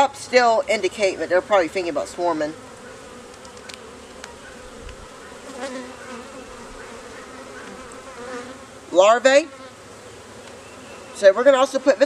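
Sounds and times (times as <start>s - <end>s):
honeybees buzzing: 0.0s - 12.0s
faint ticks: 3.3s - 5.0s.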